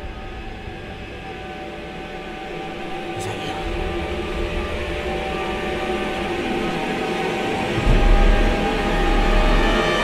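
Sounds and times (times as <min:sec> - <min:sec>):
eerie droning film score: 0:00.0 - 0:10.0.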